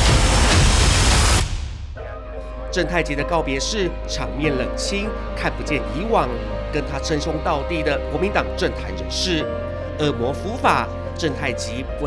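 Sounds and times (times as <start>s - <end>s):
dramatic soundtrack music: 0.0s - 12.0s.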